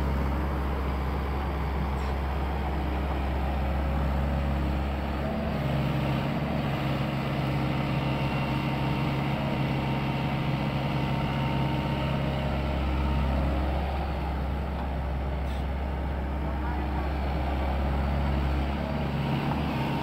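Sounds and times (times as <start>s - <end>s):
excavator diesel engine running: 0.0s - 20.0s.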